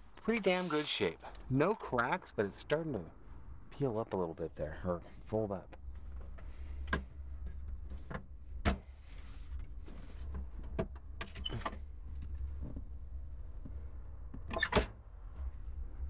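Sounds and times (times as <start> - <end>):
steady low rumble: 1.4 - 10.7.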